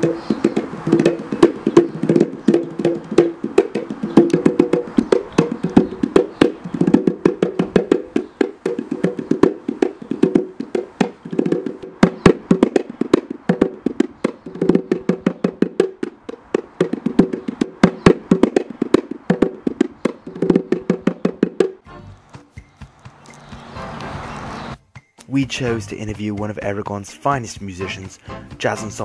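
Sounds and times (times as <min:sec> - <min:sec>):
djembe played with hands: 0:00.0 - 0:21.9.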